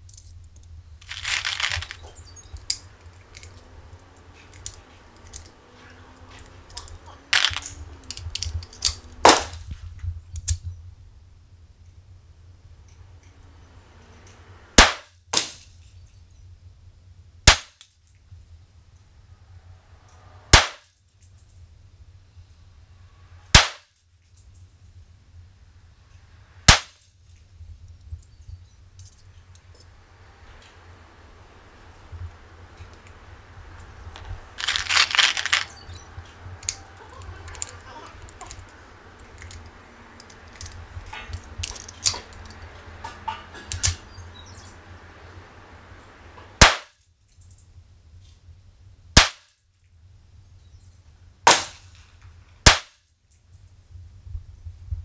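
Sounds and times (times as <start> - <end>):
pistol shot: 9.2 - 9.6, 14.8 - 15.6, 17.5 - 17.8, 20.5 - 20.9, 23.5 - 23.9, 26.7 - 27.0, 46.6 - 47.0, 49.2 - 49.5, 51.5 - 51.9, 52.6 - 53.0.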